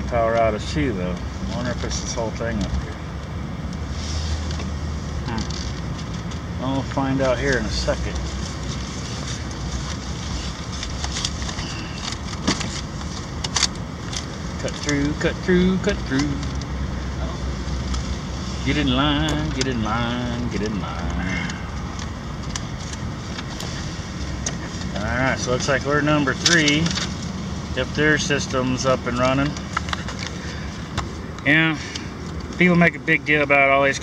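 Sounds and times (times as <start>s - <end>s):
car engine and tyres rumbling: 0.0s - 34.0s
road noise: 0.0s - 34.0s.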